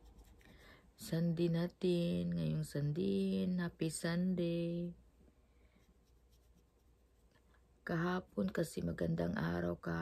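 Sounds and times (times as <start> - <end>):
makeup brush scratching: 0.0 - 0.6, 5.8 - 7.4
woman talking: 7.8 - 10.0.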